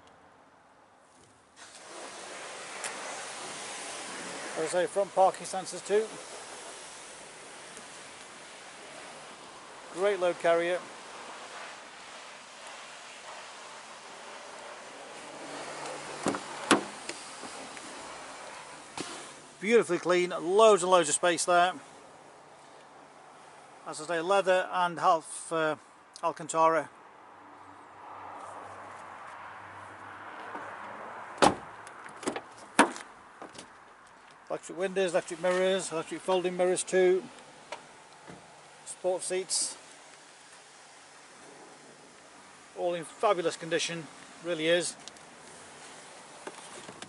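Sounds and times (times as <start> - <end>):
steady background hiss: 0.0 - 27.9, 31.4 - 47.0
car door latch clunk: 16.2 - 17.0, 31.4 - 33.6.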